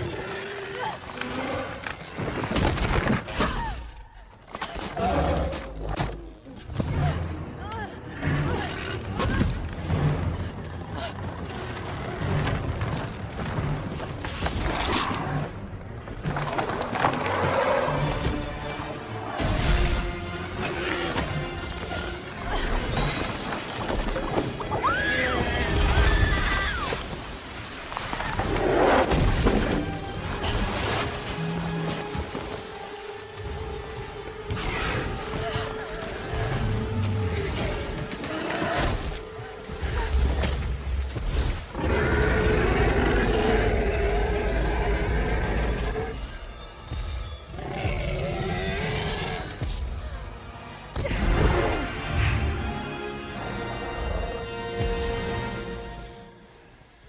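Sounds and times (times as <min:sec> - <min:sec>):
film music score: 0:00.0 - 0:57.0.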